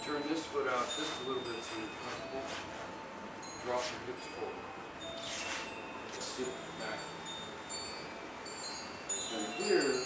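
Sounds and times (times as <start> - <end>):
wind chimes ringing: 0.0 - 10.0.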